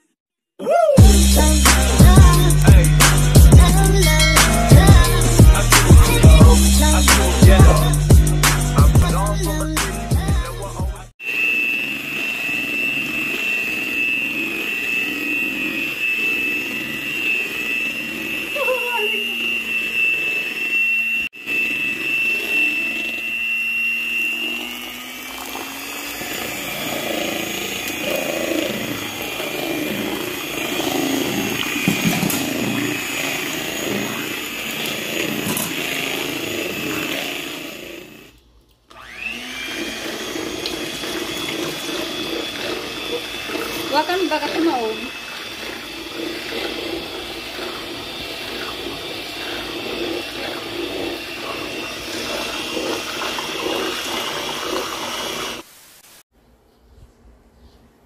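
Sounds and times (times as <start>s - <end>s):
electric hand mixer whining: 1.0s - 55.7s.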